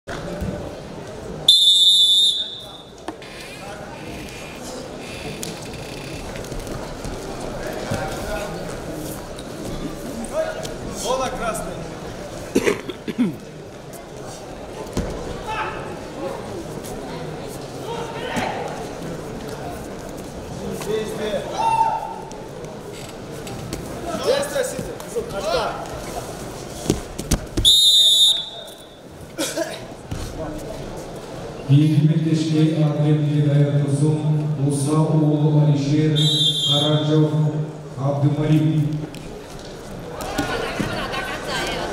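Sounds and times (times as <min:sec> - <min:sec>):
crowd murmur in large hall: 0:00.0 - 0:41.9
referee's whistle blast: 0:01.5 - 0:02.8, 0:27.6 - 0:28.8, 0:36.2 - 0:37.0.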